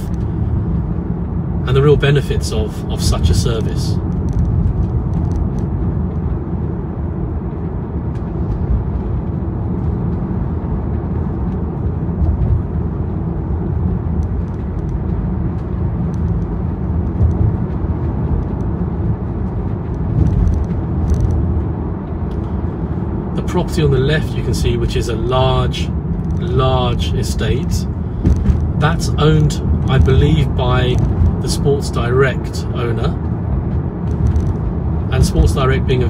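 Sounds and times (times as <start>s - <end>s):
car road and tyre rumble: 0.0s - 36.0s.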